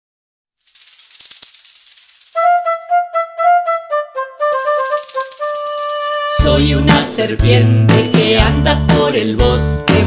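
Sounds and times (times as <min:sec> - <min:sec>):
shaker rattling fast: 0:00.6 - 0:03.0, 0:04.4 - 0:06.6.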